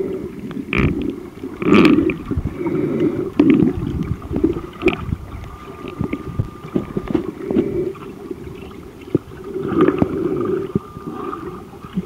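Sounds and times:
muffled underwater noise: 0.0s - 12.0s
water gurgling bursts: 0.0s - 12.0s.

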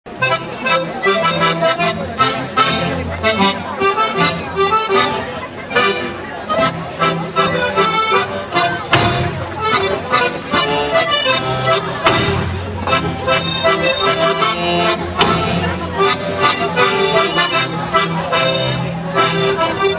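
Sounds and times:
accordion folk dance music: 0.1s - 19.9s.

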